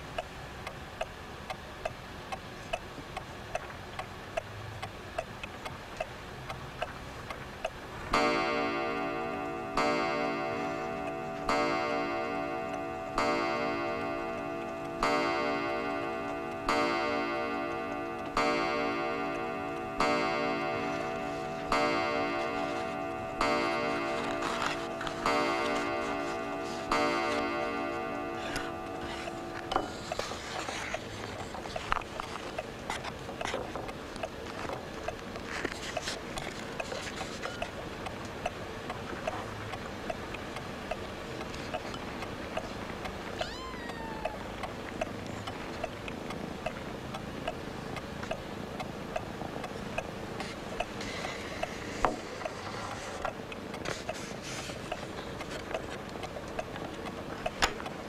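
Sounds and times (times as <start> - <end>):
mantel clock ticking: 0.0 - 58.0
deep ringing clock chimes: 8.1 - 30.2.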